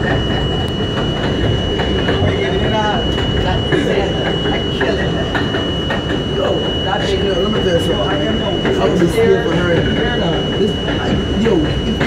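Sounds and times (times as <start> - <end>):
subway train wheels rumbling: 0.0 - 12.0.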